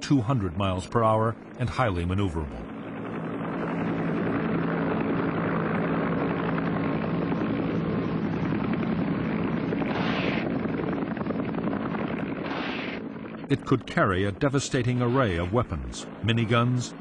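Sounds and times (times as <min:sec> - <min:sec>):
helicopter rotor and engine: 0:00.0 - 0:17.0.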